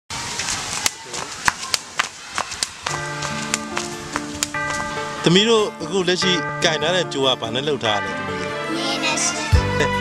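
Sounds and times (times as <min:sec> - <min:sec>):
skipping rope slapping dirt: 0:00.2 - 0:04.9
background music with held chords: 0:03.1 - 0:10.0.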